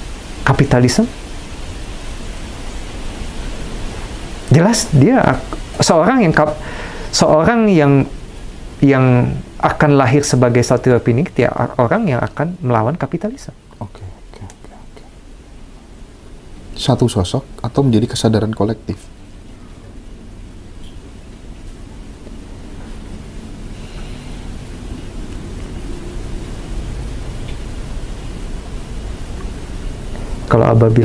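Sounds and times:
low hum: 0:00.0 - 0:31.0
steady background hiss: 0:00.0 - 0:31.0
faint breathing: 0:06.6 - 0:07.2, 0:23.6 - 0:25.1.

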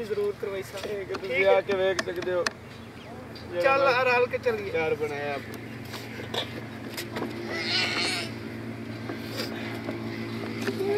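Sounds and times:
low engine hum: 0:00.0 - 0:10.9.

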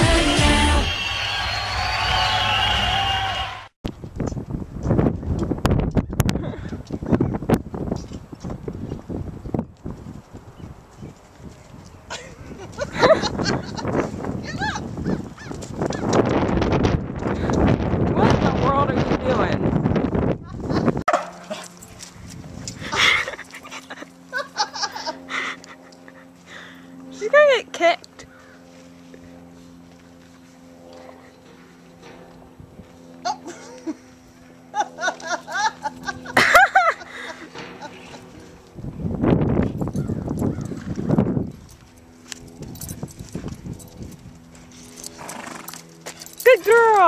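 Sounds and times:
horse hooves thudding on dirt: 0:15.0 - 0:17.7, 0:37.6 - 0:47.0.

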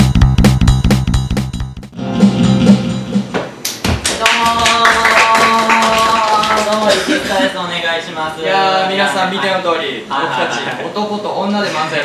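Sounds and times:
entrance music: 0:00.0 - 0:03.8
audience clapping: 0:03.6 - 0:07.4.

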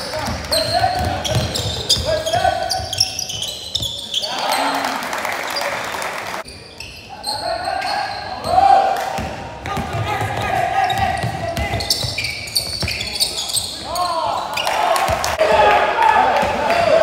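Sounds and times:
sneakers squeaking on floor: 0:00.0 - 0:04.8, 0:06.4 - 0:15.4
players' voices echoing: 0:00.0 - 0:17.0
basketball dribbling: 0:00.2 - 0:04.0.

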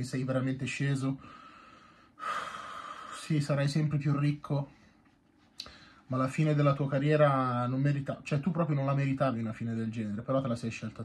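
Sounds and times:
man exhaling: 0:01.2 - 0:03.2.

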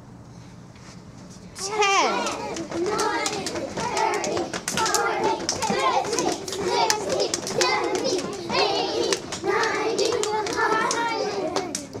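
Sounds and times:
young children chattering: 0:01.6 - 0:06.4.

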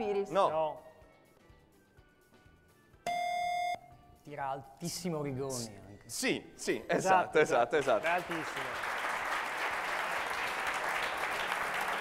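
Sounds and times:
quiz buzzer tone: 0:03.1 - 0:03.9.

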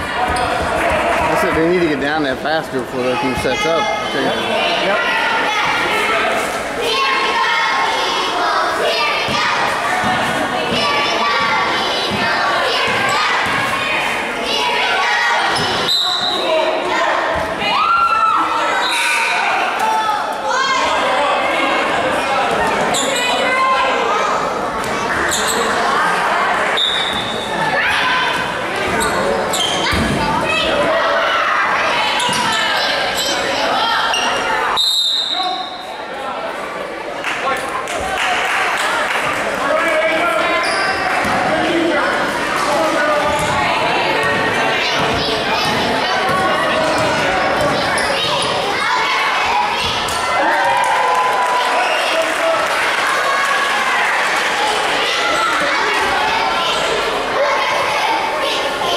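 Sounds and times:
shoe squeaks: 0:15.5 - 0:16.6, 0:18.8 - 0:19.4, 0:22.9 - 0:23.5, 0:25.2 - 0:25.8, 0:26.8 - 0:27.6, 0:29.0 - 0:30.0, 0:32.2 - 0:36.0, 0:40.6 - 0:41.1, 0:47.8 - 0:48.7
people shouting: 0:47.8 - 0:58.4.

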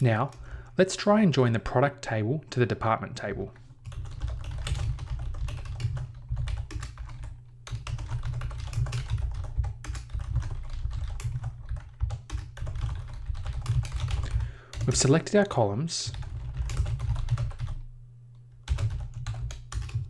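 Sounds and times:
computer keyboard typing: 0:03.8 - 0:15.2, 0:16.1 - 0:17.8, 0:18.6 - 0:20.0.

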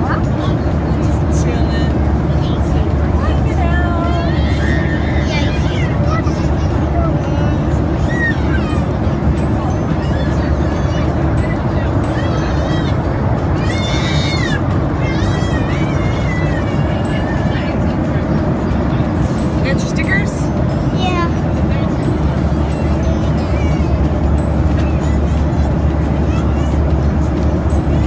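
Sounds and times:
airliner cabin drone: 0:00.0 - 0:28.0.

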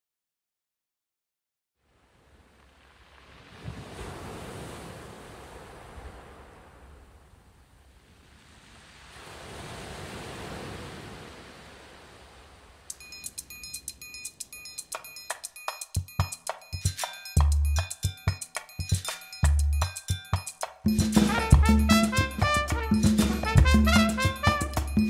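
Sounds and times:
ocean waves washing in: 0:01.8 - 0:15.2
ringing percussion strikes: 0:12.9 - 0:25.0.

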